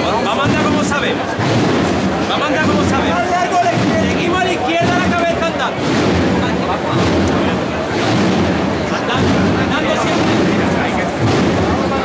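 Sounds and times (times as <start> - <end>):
crowd chatter: 0.0 - 12.0
low rumble: 0.5 - 12.0.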